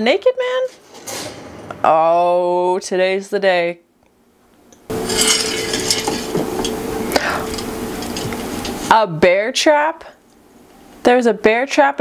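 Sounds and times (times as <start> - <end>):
steady hum: 4.8 - 11.0
objects clinking and knocking: 4.9 - 6.8.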